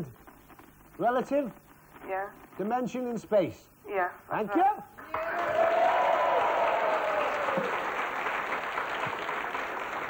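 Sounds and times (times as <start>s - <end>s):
audience applauding: 5.0s - 10.0s.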